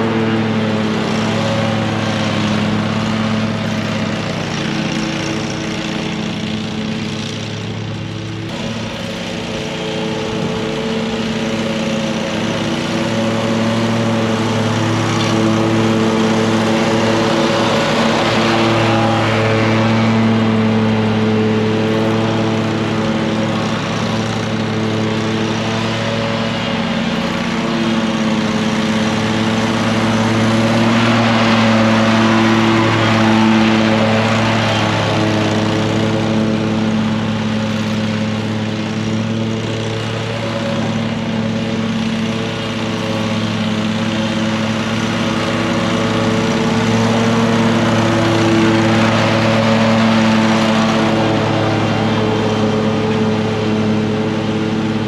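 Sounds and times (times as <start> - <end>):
mower engine running: 0.0 - 55.0.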